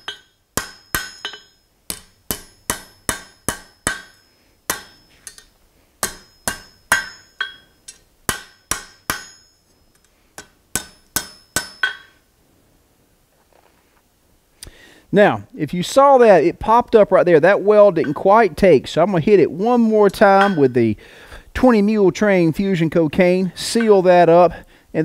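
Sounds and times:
hammer striking steel on anvil: 0.0 - 12.2, 18.0 - 18.3, 20.1 - 20.8, 23.7 - 24.0.

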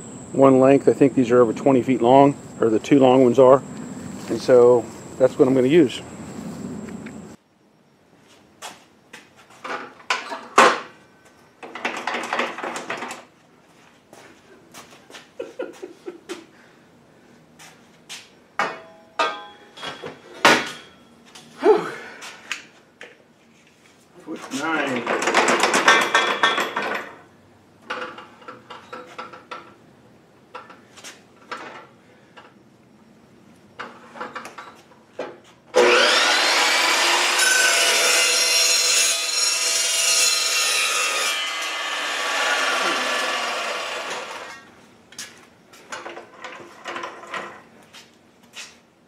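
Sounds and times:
chop saw cutting metal pipe: 35.8 - 44.6.

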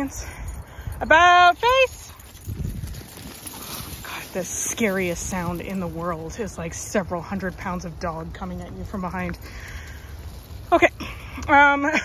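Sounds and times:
dogs running on gravel path: 0.0 - 12.0.

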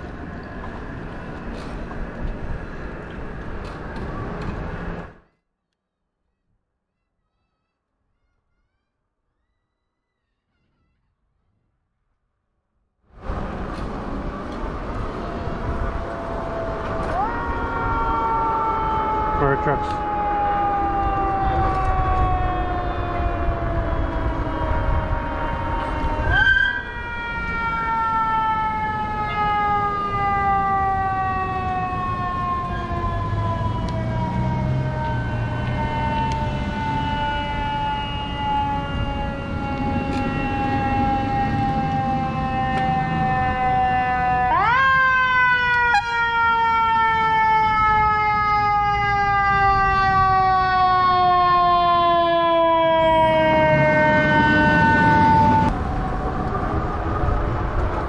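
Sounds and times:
low traffic rumble: 0.0 - 5.3, 13.1 - 58.0.

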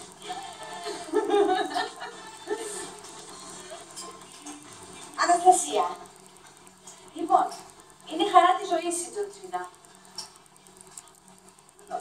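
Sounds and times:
faint steady hum: 0.0 - 12.0
voice from tv speaker: 5.2 - 6.1.

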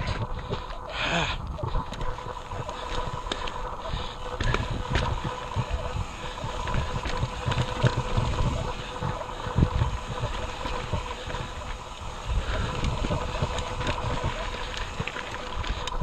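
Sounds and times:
bike rattling over rock: 0.0 - 16.0
wind buffeting microphone: 0.0 - 16.0.

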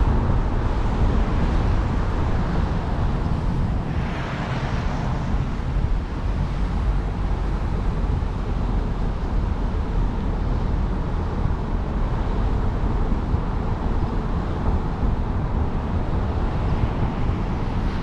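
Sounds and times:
car engine and tyre rumble: 0.0 - 18.0.

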